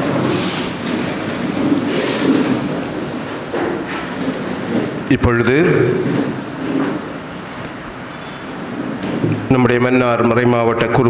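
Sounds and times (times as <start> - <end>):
man speaking over loudspeaker: 5.1 - 6.3, 9.4 - 11.0.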